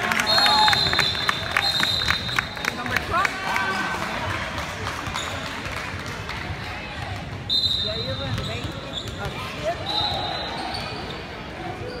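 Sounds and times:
voices talking in gymnasium: 0.0s - 12.0s.

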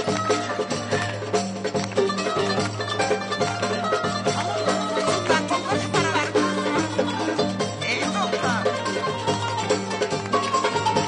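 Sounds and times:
belly-dance music with plucked strings: 0.0s - 11.0s.

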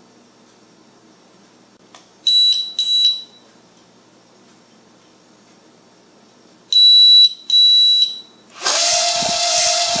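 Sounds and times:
drone motors whining: 8.6s - 10.0s.

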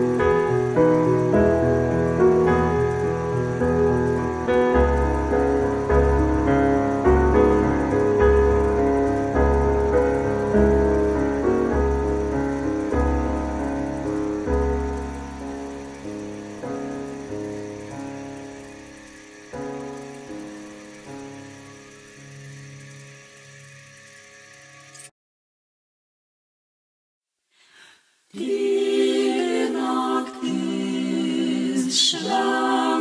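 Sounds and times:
slow piano playing: 0.0s - 25.1s.

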